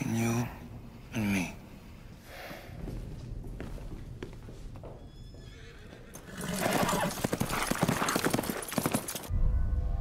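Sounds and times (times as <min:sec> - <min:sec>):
hooves clattering: 0:02.8 - 0:09.3
horse whinnying: 0:05.2 - 0:08.3.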